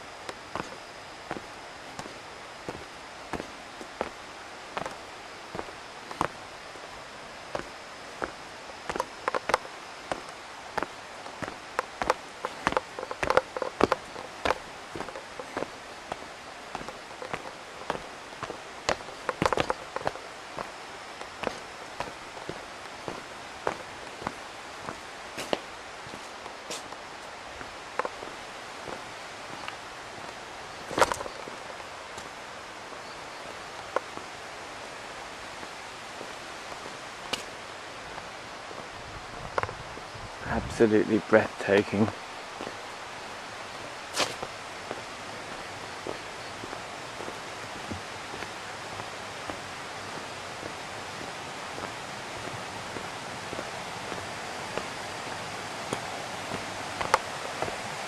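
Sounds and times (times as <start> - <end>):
footsteps on stone path: 0.0 - 58.0
steady outdoor hiss: 0.0 - 58.0.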